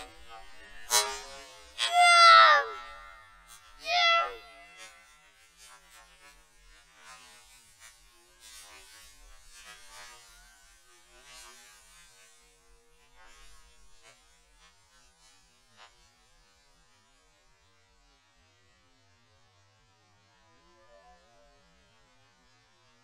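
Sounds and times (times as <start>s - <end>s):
child yelling excitedly: 1.8s - 5.0s.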